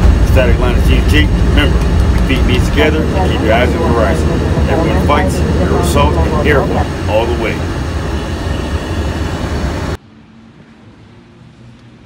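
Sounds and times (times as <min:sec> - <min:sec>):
loud rushing roar: 0:00.0 - 0:12.0.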